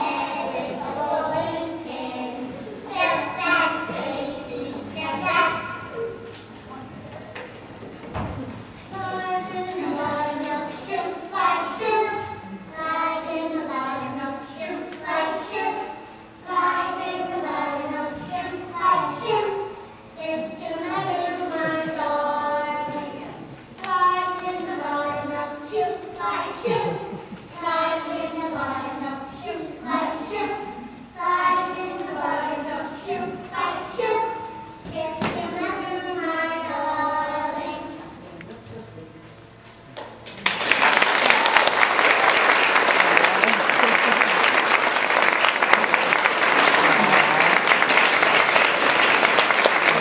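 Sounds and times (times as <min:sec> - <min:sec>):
children singing together: 0:00.0 - 0:06.2, 0:08.9 - 0:38.0.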